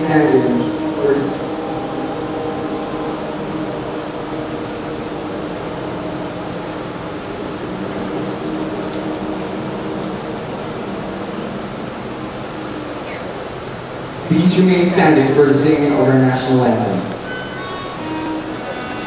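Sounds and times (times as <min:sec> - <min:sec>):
choir singing a cappella: 0:00.0 - 0:12.4, 0:17.2 - 0:19.0
hall noise hiss: 0:00.0 - 0:19.0.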